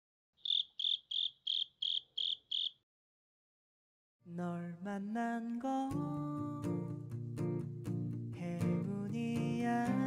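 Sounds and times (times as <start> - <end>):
cricket chirping: 0.4 - 2.8.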